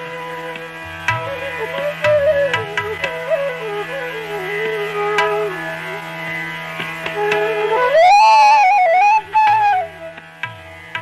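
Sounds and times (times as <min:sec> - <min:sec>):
bamboo flute melody: 0:00.0 - 0:11.0
tabla strokes: 0:00.0 - 0:11.0.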